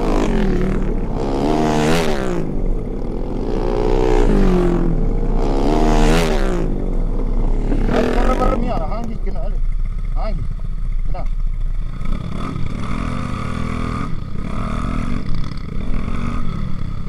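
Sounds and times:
motorcycle engine revving: 0.0s - 17.0s.

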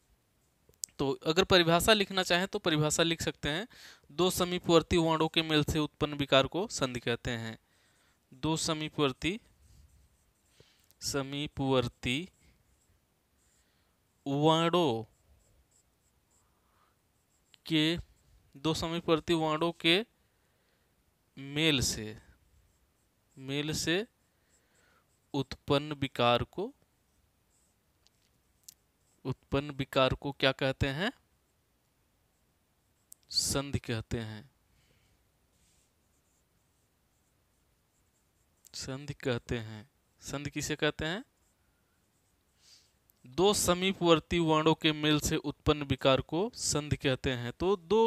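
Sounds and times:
man talking: 0.8s - 7.6s, 8.3s - 9.5s, 11.0s - 12.4s, 14.2s - 15.1s, 17.6s - 20.1s, 21.4s - 22.3s, 23.4s - 24.1s, 25.4s - 26.8s, 29.2s - 31.2s, 33.3s - 34.5s, 38.7s - 41.3s, 43.2s - 48.0s
marker scratching on whiteboard: 8.4s - 19.8s, 27.0s - 29.5s, 35.5s - 38.8s.

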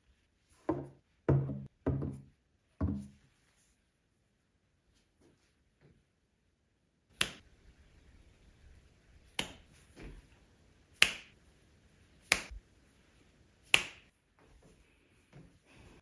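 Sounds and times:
finger snaps: 7.2s - 7.4s, 9.4s - 9.6s, 11.0s - 11.3s, 12.3s - 12.6s, 13.7s - 14.1s.

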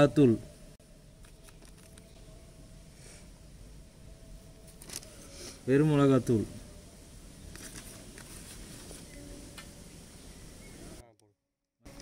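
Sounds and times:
steady low hiss: 0.0s - 11.2s.

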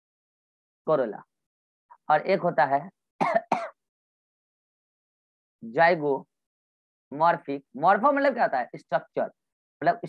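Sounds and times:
man clearing his throat: 3.2s - 3.8s.

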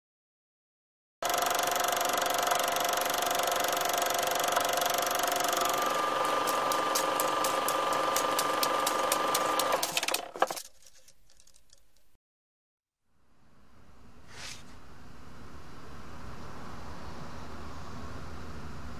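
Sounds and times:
film projector whirring: 1.2s - 10.5s
rapid clatter of clicks: 1.2s - 12.0s.

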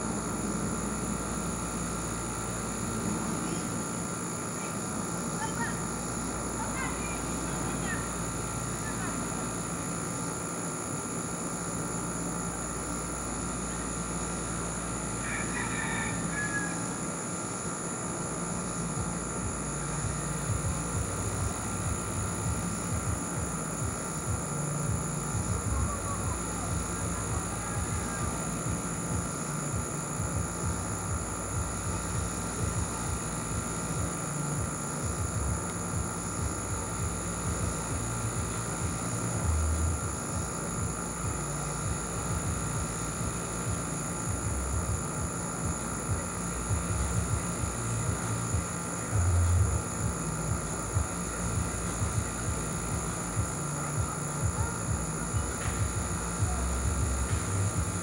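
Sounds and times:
constant high-pitched tones: 0.0s - 58.0s
uneven low mechanical rumble: 0.0s - 58.0s.

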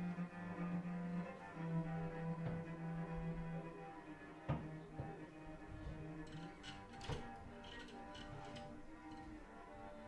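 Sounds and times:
sustained bowed cello notes: 0.0s - 10.0s.

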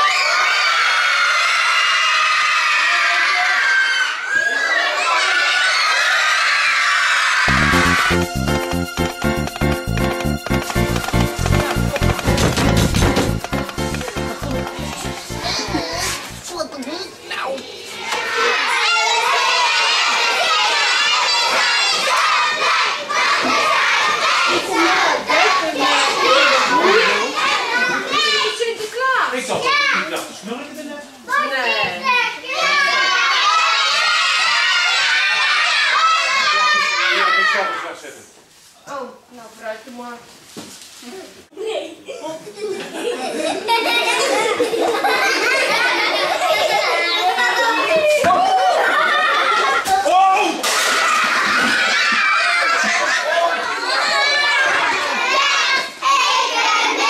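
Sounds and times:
children shouting and cheering: 0.0s - 16.5s, 17.4s - 28.9s, 31.3s - 37.9s, 42.8s - 57.0s.

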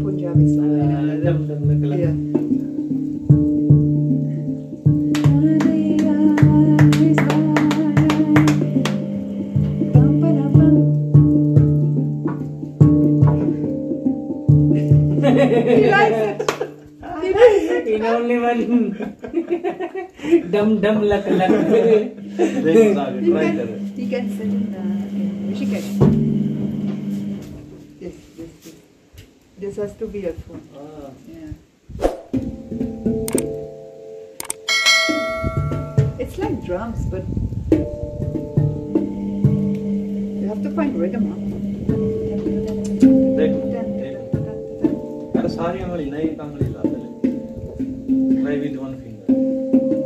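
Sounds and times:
people talking: 0.0s - 2.2s, 5.2s - 8.9s, 15.4s - 19.2s, 20.2s - 26.1s, 28.0s - 28.8s, 29.6s - 31.6s, 36.0s - 37.4s, 40.3s - 47.2s, 48.3s - 49.3s
handpan melody: 0.0s - 19.7s, 20.4s - 28.7s, 32.3s - 50.0s
people laughing: 14.7s - 23.8s.

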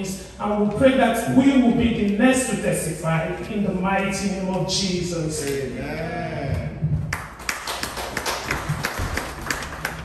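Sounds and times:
people clapping: 7.1s - 10.0s.

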